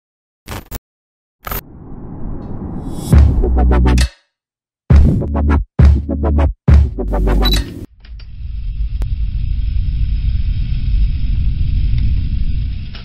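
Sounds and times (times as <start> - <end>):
rough low rumble: 1.6 - 4.0
electronic dance beat: 3.1 - 4.1, 4.9 - 7.9.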